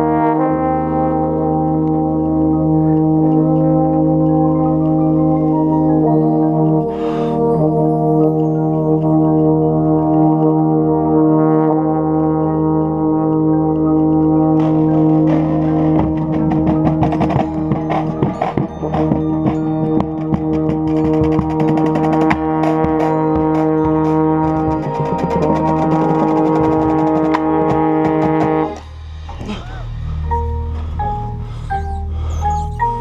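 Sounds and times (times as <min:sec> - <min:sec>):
brass line playing held chord: 0:00.0 - 0:32.2
euphonium: 0:00.0 - 0:33.0
mallet percussion notes: 0:01.5 - 0:11.2, 0:12.3 - 0:33.0
drums playing hits and runs: 0:14.5 - 0:30.0.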